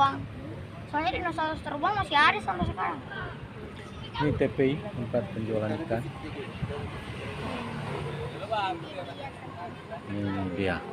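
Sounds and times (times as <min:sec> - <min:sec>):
car engine and tyre noise: 0:00.0 - 0:10.9.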